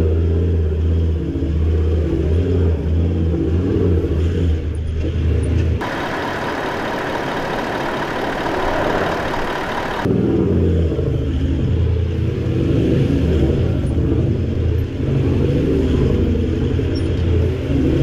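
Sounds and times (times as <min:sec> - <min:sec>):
vehicle engine working hard: 0:00.0 - 0:18.0
thin high whine: 0:05.8 - 0:10.1.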